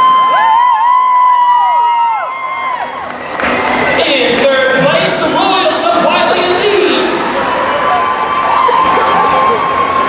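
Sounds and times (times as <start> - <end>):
cheerleaders screaming: 0.0 - 3.9, 6.0 - 10.0
announcer over public address: 4.0 - 7.4.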